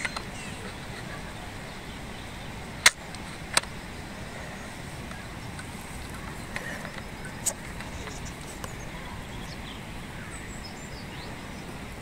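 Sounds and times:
outdoor background noise: 0.0 - 12.0
sharp clicks: 2.8 - 3.8.

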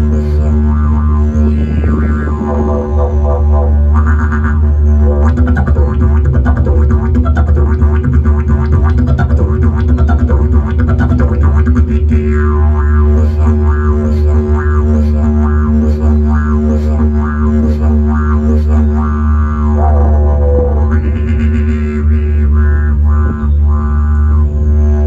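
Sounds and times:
didgeridoo drone: 0.0 - 25.0
sliding voiced tone: 19.8 - 21.4.

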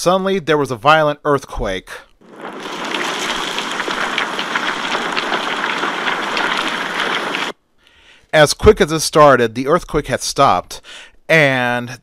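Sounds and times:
earthquake rushing noise: 2.2 - 7.6.

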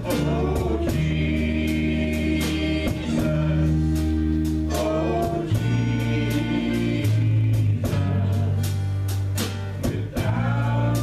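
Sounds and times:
band playing gospel song: 0.0 - 11.0
steady drum beat: 0.0 - 11.0.

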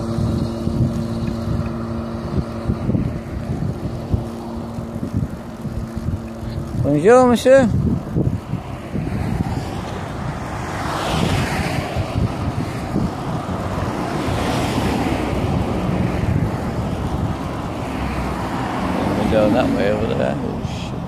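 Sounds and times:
road traffic passing: 0.0 - 21.0
wind on microphone: 0.0 - 21.0.

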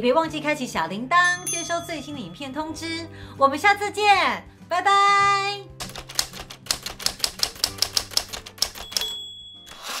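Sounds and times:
typewriter bell ding: 1.2 - 2.6, 8.6 - 10.0
typewriter key clacks: 5.8 - 10.0.

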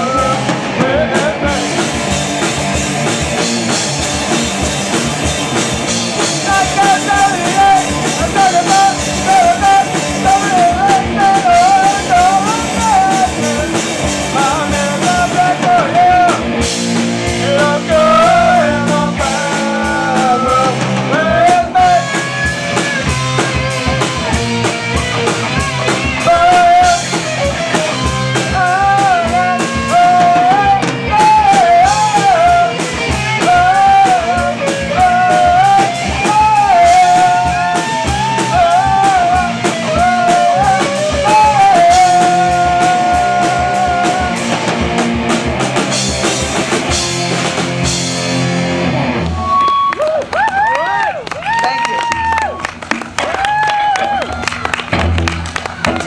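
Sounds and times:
person singing lead vocals: 0.0 - 2.4, 5.9 - 45.0
electric guitars through amps: 0.0 - 50.3, 51.1 - 56.0
drum kit: 0.0 - 56.0.

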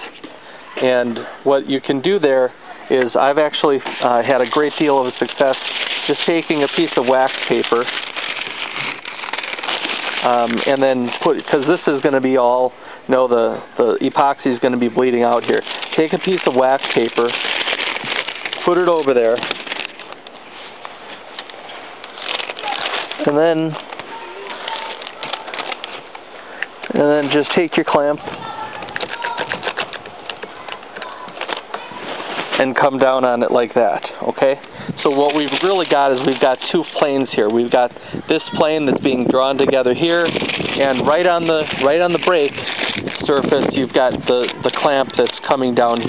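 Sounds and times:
wax paper crinkling and rustling: 0.0 - 46.0.

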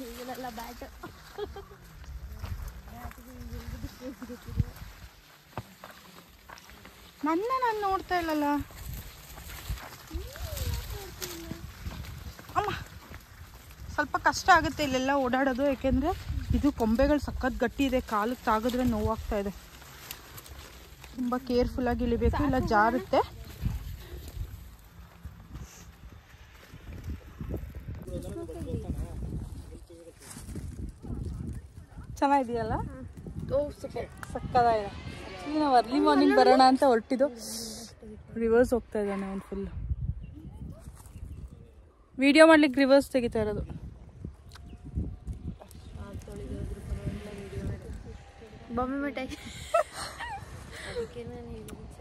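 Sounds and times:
wind buffeting microphone: 0.0 - 5.3, 6.3 - 52.0.

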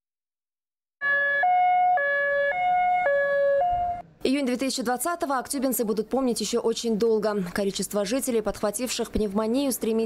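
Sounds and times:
ambulance siren two-tone: 1.0 - 4.0.

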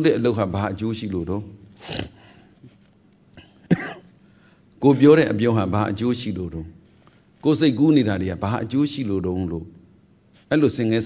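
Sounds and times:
man coughing: 3.4 - 4.2
man speaking: 4.8 - 6.8.

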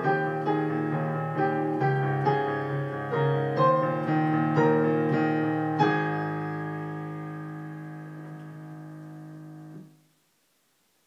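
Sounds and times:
piano chord: 0.0 - 10.0.

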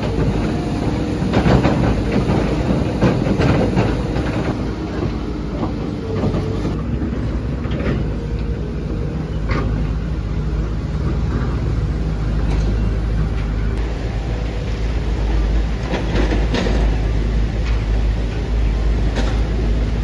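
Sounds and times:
machinery engine hum: 0.0 - 20.0
metallic clanks and knocks: 1.2 - 8.5, 15.8 - 19.8.

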